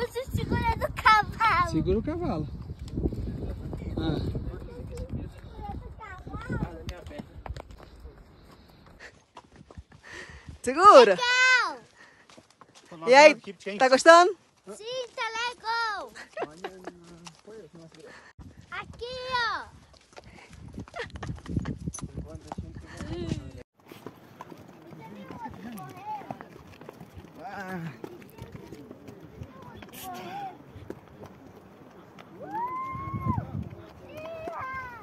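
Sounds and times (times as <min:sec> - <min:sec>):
child's voice: 0:00.0 - 0:01.8, 0:04.7 - 0:06.7, 0:11.2 - 0:11.9, 0:14.8 - 0:16.2, 0:18.7 - 0:19.8, 0:24.9 - 0:26.4, 0:34.1 - 0:35.0
horse hooves on dirt: 0:02.4 - 0:35.0
faint voices: 0:24.4 - 0:35.0.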